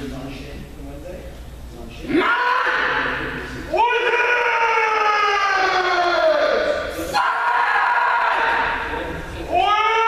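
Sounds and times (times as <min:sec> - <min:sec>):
people shouting long kiai: 0:02.1 - 0:10.0.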